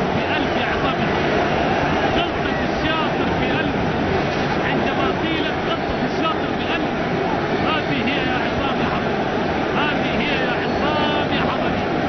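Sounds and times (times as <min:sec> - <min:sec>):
crowd roar: 0:00.0 - 0:12.0.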